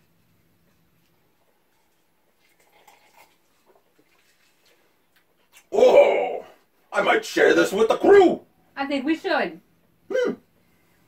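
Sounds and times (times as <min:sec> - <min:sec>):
people sipping from glasses: 0:01.4 - 0:05.7.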